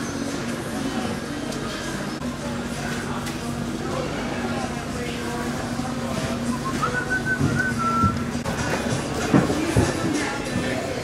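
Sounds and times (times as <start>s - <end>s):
person whistling a tune: 6.5s - 8.2s.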